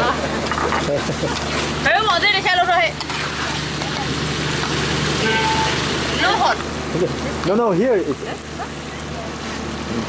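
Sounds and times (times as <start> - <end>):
sauce sizzling in a wok: 3.0 - 6.9.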